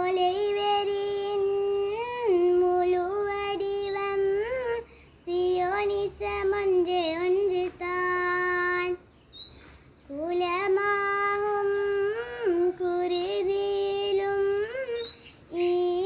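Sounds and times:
girl singing unaccompanied: 0.0s - 16.0s.

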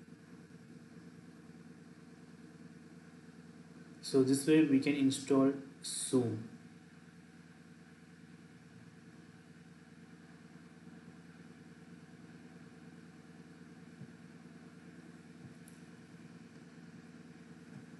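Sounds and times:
faint background hum and hiss: 0.0s - 17.9s.

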